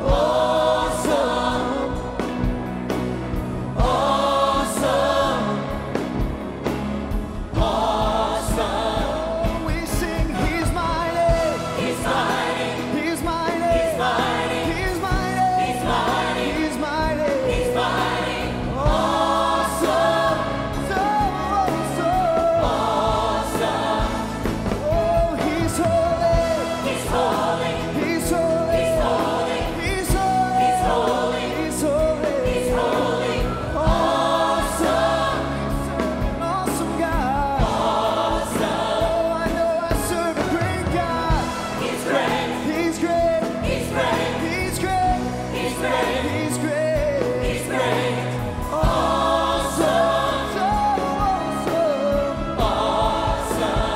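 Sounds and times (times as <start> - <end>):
choir singing gospel song: 0.0 - 53.9
instrumental backing with bass: 0.0 - 53.9.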